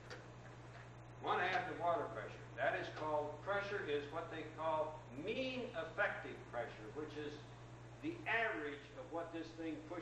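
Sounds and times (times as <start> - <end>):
steady low hum: 0.0 - 10.0
man speaking: 1.2 - 10.0.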